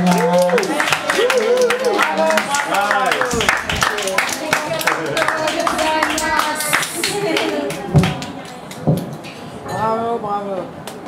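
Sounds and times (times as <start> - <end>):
people clapping: 0.0 - 9.3
people talking: 1.8 - 8.5.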